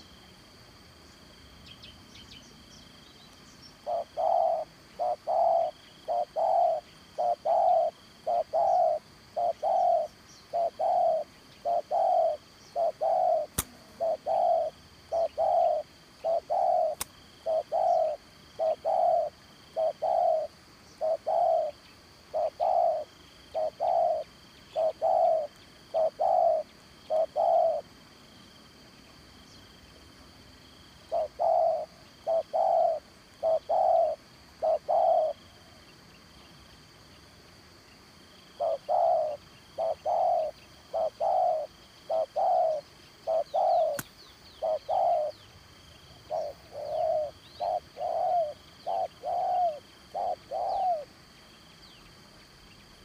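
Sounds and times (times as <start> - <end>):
high insect drone: 0.0 - 53.0
dove cooing: 3.8 - 27.9, 31.1 - 35.8, 38.5 - 45.5, 46.2 - 51.1
faint clicks: 43.9 - 44.2.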